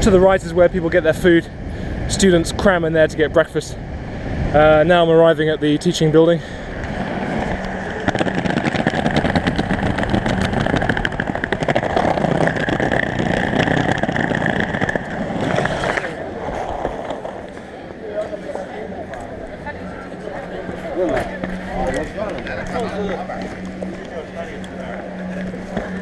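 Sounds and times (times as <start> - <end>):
skateboard wheels rolling on bricks: 6.9 - 18.4, 20.4 - 26.0.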